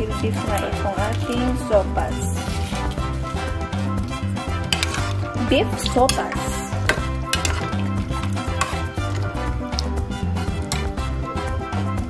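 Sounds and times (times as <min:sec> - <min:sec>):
music with bass beat: 0:00.0 - 0:12.0
spoon stirring soup in pot: 0:02.4 - 0:11.2
spoon clicking against pot: 0:04.7 - 0:05.0, 0:05.8 - 0:08.9.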